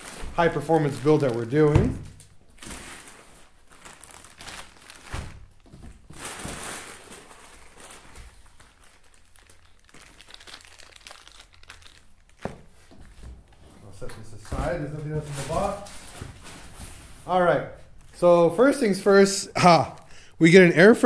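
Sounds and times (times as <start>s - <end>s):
plastic packaging crinkling: 0.0s - 17.2s, 17.9s - 21.0s.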